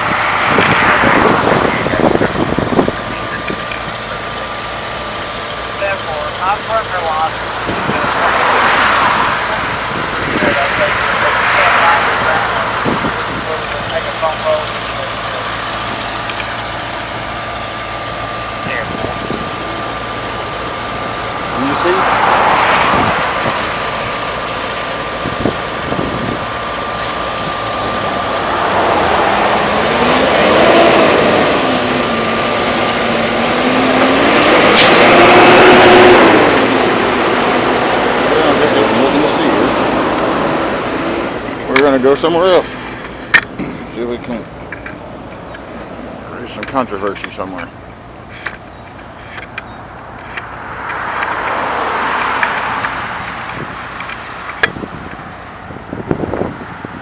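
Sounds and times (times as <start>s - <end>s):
truck engine running: 0.0s - 57.0s.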